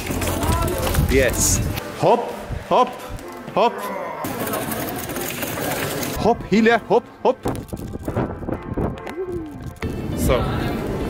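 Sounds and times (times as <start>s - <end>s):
outdoor background noise: 0.0s - 11.0s
man calling out: 2.0s - 4.3s, 6.2s - 7.5s.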